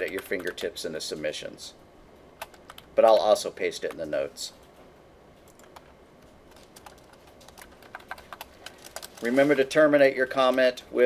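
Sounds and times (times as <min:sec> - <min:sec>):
computer keyboard keystrokes: 0:00.0 - 0:00.7, 0:02.4 - 0:04.0, 0:05.5 - 0:05.9, 0:06.5 - 0:09.2.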